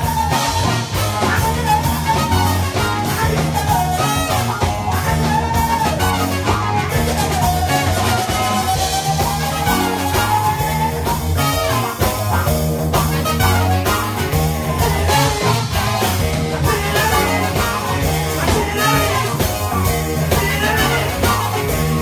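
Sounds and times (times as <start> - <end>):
lead singer: 0.0 - 22.0
live band playing upbeat song: 0.0 - 22.0.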